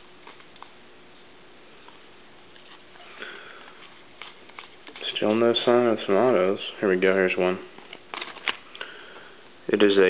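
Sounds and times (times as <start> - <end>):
trading cards sliding: 1.8 - 5.4, 7.7 - 8.9.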